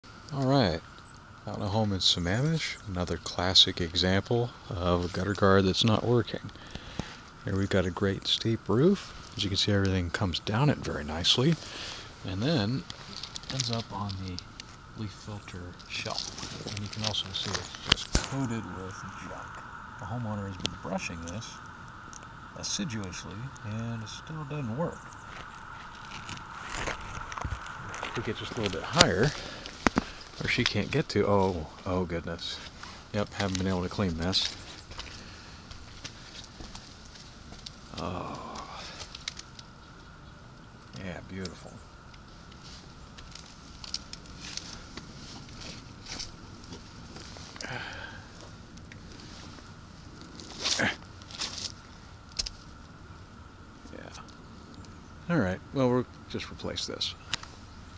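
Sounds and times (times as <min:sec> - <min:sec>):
faint hiss: 0:00.0 - 0:57.9
faint steady hum: 0:00.0 - 0:57.9
footsteps on shingle roof: 0:25.2 - 0:30.8.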